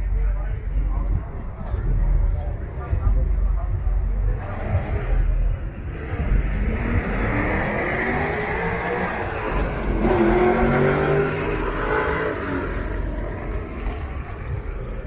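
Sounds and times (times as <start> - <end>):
car engine revving: 3.0 - 15.0.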